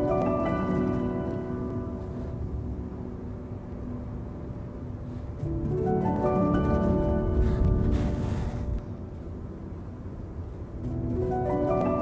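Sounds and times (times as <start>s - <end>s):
background music: 0.0s - 12.0s
low steady rumble: 1.4s - 11.7s.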